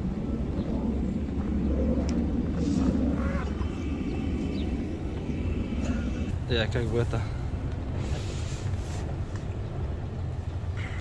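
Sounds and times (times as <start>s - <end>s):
low rumble: 0.0s - 8.0s.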